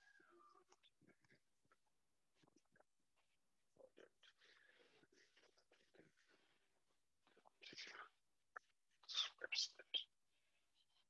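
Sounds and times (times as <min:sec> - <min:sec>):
man whispering: 0:00.0 - 0:01.5, 0:03.8 - 0:11.0.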